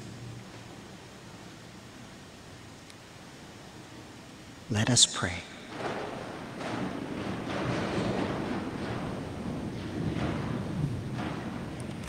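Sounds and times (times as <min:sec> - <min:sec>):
congregation rustling in church: 0:03.5 - 0:12.0.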